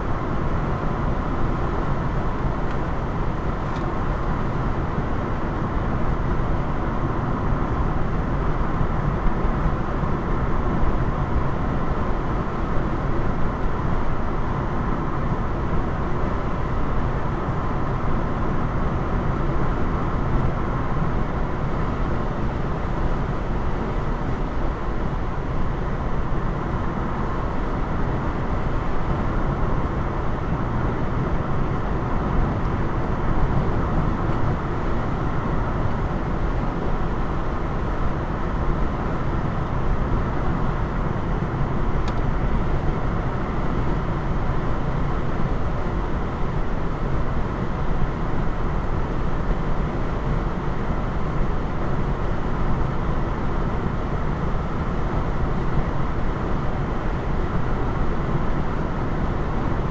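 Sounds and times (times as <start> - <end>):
car road noise inside: 0.0 - 59.9.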